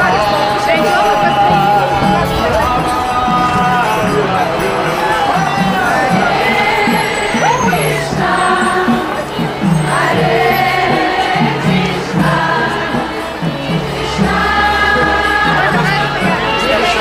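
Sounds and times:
group singing a devotional chant: 0:00.0 - 0:17.0
instrumental accompaniment: 0:00.0 - 0:17.0.

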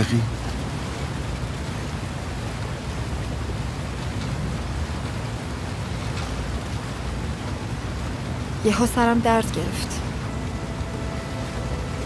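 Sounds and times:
water rushing past boat: 0:00.0 - 0:12.0
low rumble: 0:09.8 - 0:12.0.

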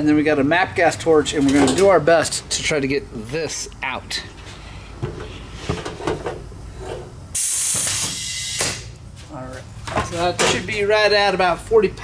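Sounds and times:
compressed air hissing: 0:06.6 - 0:08.9.

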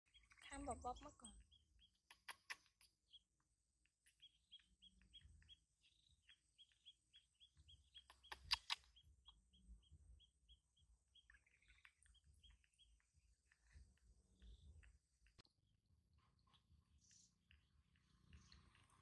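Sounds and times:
sharp clicks: 0:01.9 - 0:03.0, 0:07.9 - 0:09.0.

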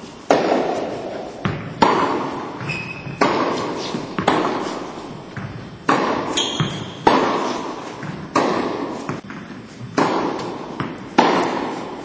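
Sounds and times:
tennis racket hitting ball: 0:00.0 - 0:12.0
shoe squeak: 0:02.6 - 0:05.4, 0:06.3 - 0:07.6.

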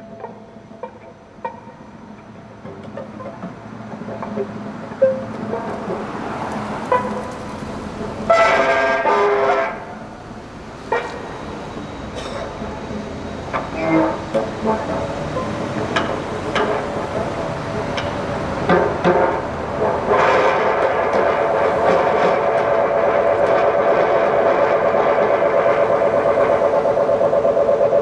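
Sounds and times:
loud held many-toned sound: 0:00.0 - 0:28.0.

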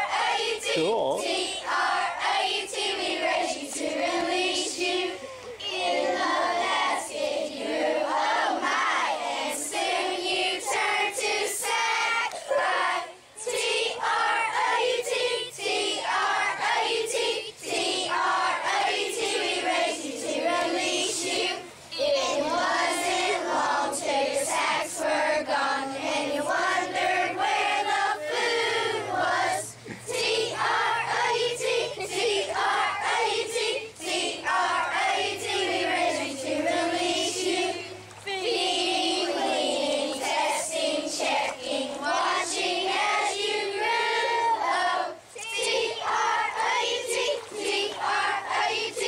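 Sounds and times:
children singing in unison: 0:00.0 - 0:49.0.

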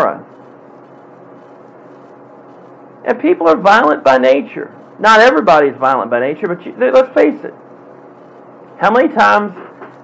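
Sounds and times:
faint hum: 0:00.0 - 0:10.0
steady hiss: 0:00.0 - 0:10.0.

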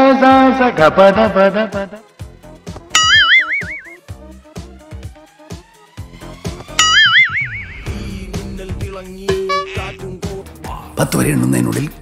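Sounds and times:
background music with light beat: 0:00.0 - 0:12.0
comic boing sound effect: 0:03.0 - 0:04.0, 0:06.8 - 0:07.8.

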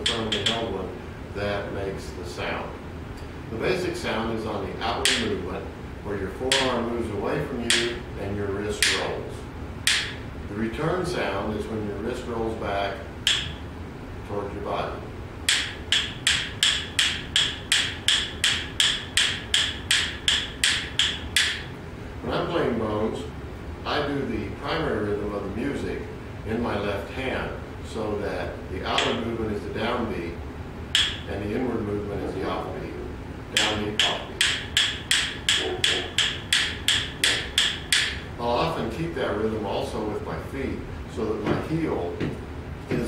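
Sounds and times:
rhythm bones clicking: 0:00.0 - 0:00.7, 0:04.9 - 0:05.4, 0:06.4 - 0:06.8, 0:07.6 - 0:08.2, 0:08.8 - 0:09.1, 0:09.8 - 0:10.4, 0:13.2 - 0:13.8, 0:15.4 - 0:21.8, 0:28.9 - 0:29.2, 0:30.9 - 0:31.3, 0:33.4 - 0:38.4.

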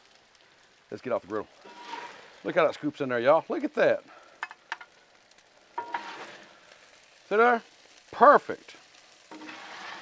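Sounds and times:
food sizzling: 0:00.0 - 0:10.0
metal scoop scraping a griddle: 0:01.6 - 0:02.8, 0:05.8 - 0:06.6, 0:09.2 - 0:10.0.

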